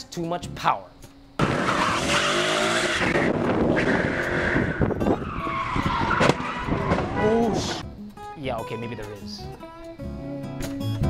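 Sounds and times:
car engine revving hard: 1.4s - 5.1s
tyres squealing: 1.4s - 7.8s.

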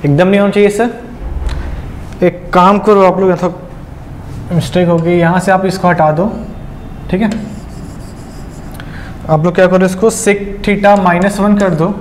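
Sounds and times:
stylus scratching on display: 7.4s - 8.8s.

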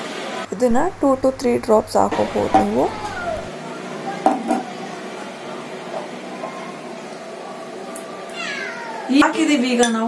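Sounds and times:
cat meowing: 2.9s - 3.5s, 8.3s - 9.2s.

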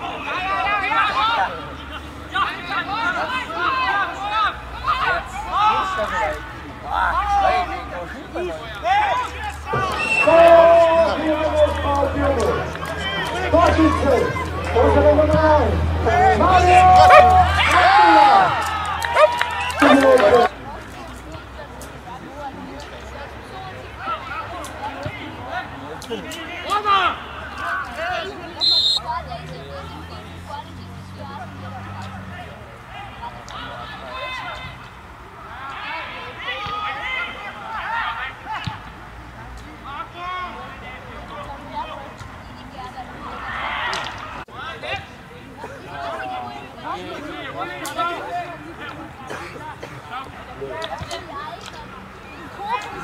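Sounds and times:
people shouting and cheering: 0.0s - 20.6s, 23.7s - 30.1s, 31.7s - 39.0s
crowd chatter: 0.0s - 53.0s.

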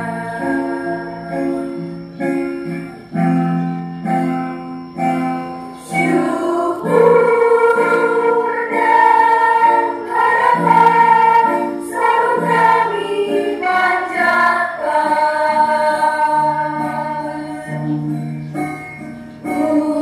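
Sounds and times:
mixed choir singing a hymn: 0.0s - 3.0s, 5.8s - 20.0s
keyboard chords: 0.0s - 20.0s.

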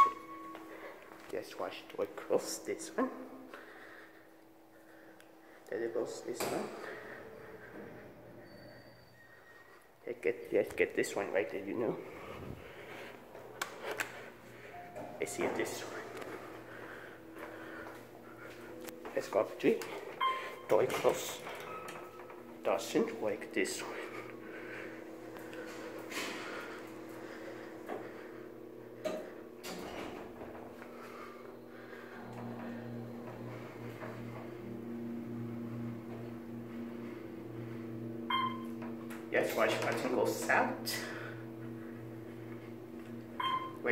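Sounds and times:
low steady hum: 0.0s - 43.9s.

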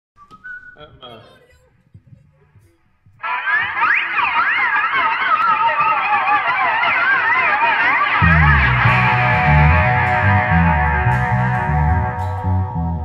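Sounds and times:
electric guitar sustained notes: 3.2s - 13.0s.

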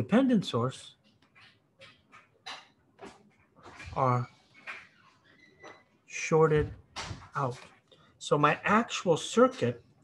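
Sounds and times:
stylus scratching on tablet screen: 0.9s - 6.0s.

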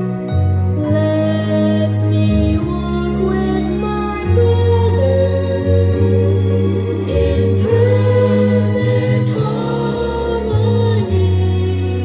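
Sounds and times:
choir singing held chords: 1.4s - 12.0s.

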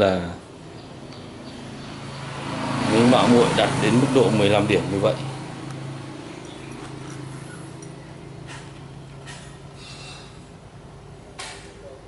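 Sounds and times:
low mechanical hum: 4.7s - 12.0s.

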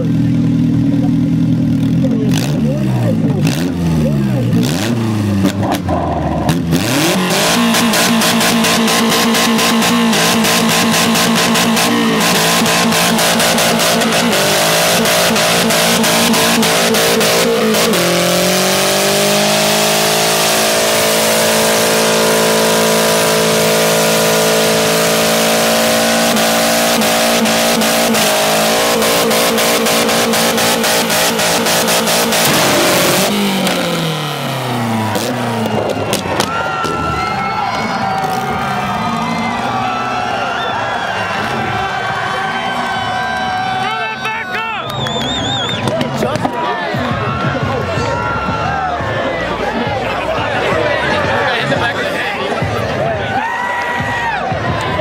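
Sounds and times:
car engine at high revs: 0.0s - 43.8s.

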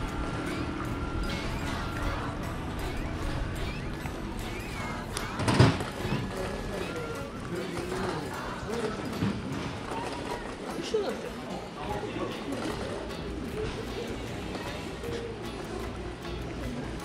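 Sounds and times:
music playing: 0.0s - 17.0s
people talking: 0.0s - 17.0s.

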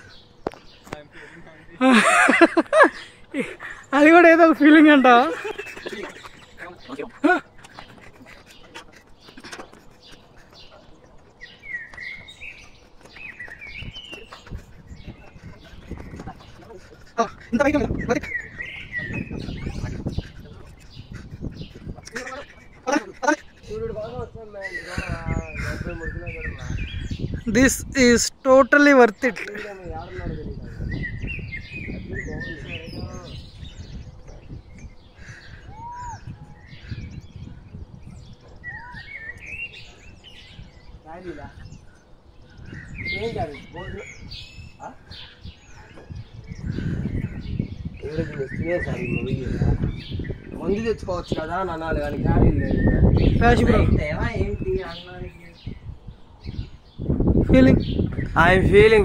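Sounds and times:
birds warbling: 0.0s - 59.0s.

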